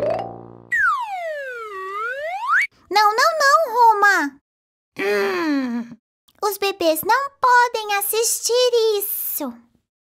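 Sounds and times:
person sighing: 0:05.0 - 0:06.0.

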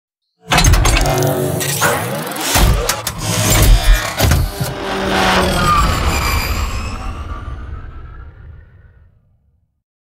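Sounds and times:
vehicle engine revving: 0:01.1 - 0:08.9.

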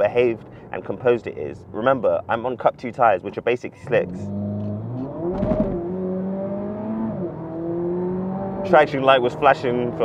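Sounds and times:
car engine accelerating: 0:03.9 - 0:10.0.

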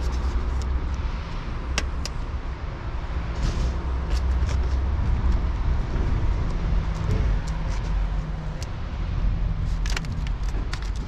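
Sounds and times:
steady low rumble: 0:00.0 - 0:11.0
short scrape: 0:03.4 - 0:04.3.

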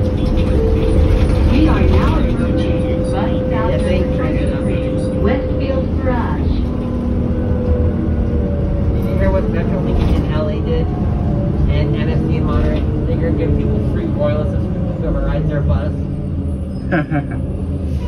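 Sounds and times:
bus engine rumble and whine: 0:00.0 - 0:18.0
people talking: 0:01.2 - 0:06.7, 0:09.0 - 0:11.0, 0:11.6 - 0:16.0.

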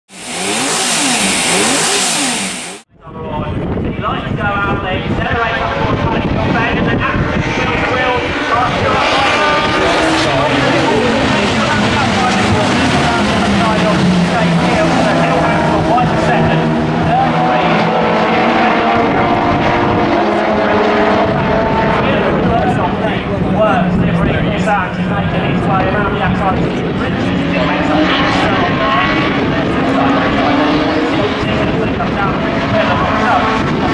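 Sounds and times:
race car engines roaring past: 0:00.1 - 0:33.9.

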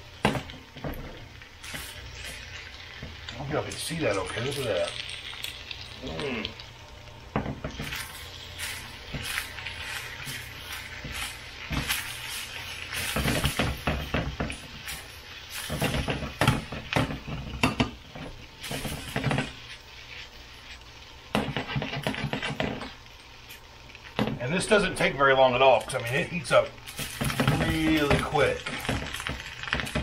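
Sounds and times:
low sizzle: 0:00.0 - 0:30.0
spatula scraping a pan: 0:07.7 - 0:17.6, 0:18.2 - 0:23.0.

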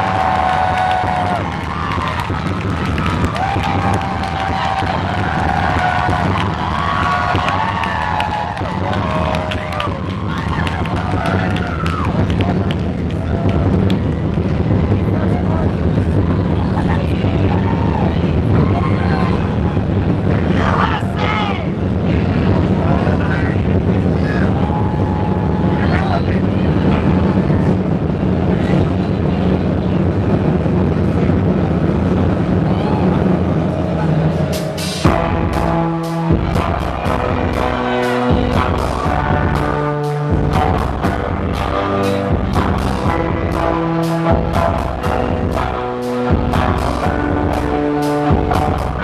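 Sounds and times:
low drone: 0:00.0 - 0:49.0.

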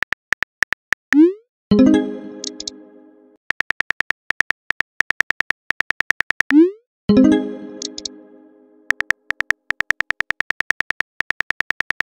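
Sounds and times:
high beep-like typing ticks: 0:02.4 - 0:02.7, 0:03.5 - 0:06.8, 0:07.8 - 0:08.1, 0:08.9 - 0:12.0.

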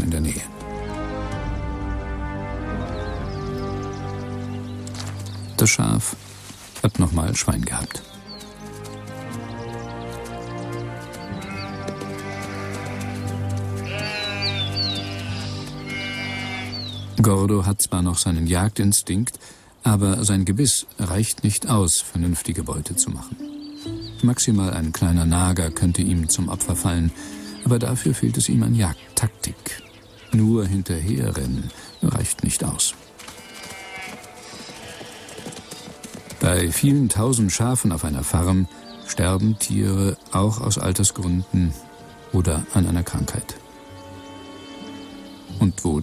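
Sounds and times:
background music of held tones: 0:00.0 - 0:18.6, 0:20.6 - 0:46.0
farm animal call: 0:11.2 - 0:17.2, 0:33.2 - 0:37.2, 0:44.0 - 0:45.8
sheep bleating: 0:11.3 - 0:17.0, 0:33.2 - 0:36.5, 0:44.2 - 0:45.3.

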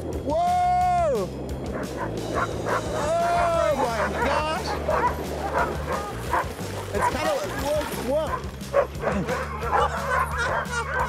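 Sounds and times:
sled dogs yelping and barking: 0:01.5 - 0:11.0
dog yowling: 0:01.8 - 0:07.4, 0:08.3 - 0:11.0.

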